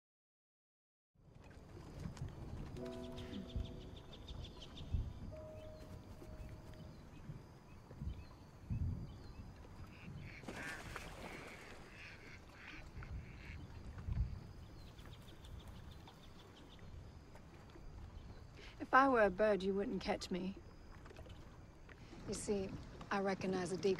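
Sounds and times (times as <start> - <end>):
ducks and geese calling: 9.9 - 13.7.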